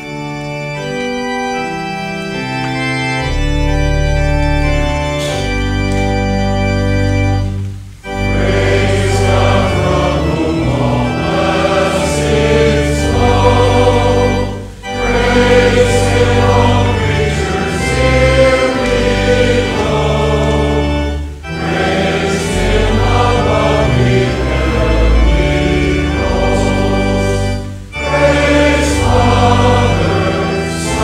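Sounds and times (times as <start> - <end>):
congregation singing a hymn: 0.0 - 31.0
organ: 0.0 - 31.0.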